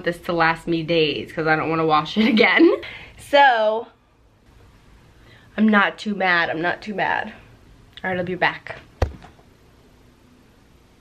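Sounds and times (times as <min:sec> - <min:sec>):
faint room hiss: 0:00.0 - 0:11.0
sharp knock: 0:09.0 - 0:09.3.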